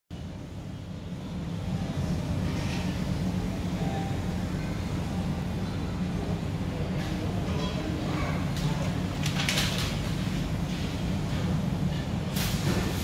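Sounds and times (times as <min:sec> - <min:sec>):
low indoor background rumble: 0:00.1 - 0:13.0.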